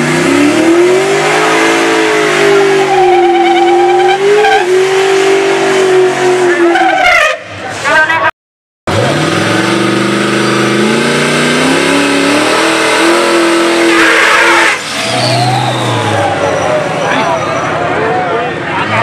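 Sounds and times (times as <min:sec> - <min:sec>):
car engine revving hard: 0:00.0 - 0:06.8, 0:08.9 - 0:17.0
crowd voices: 0:15.1 - 0:19.0.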